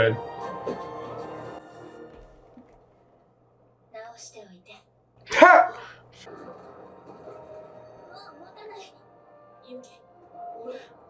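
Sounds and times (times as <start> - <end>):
person sneezing: 5.3 - 6.0.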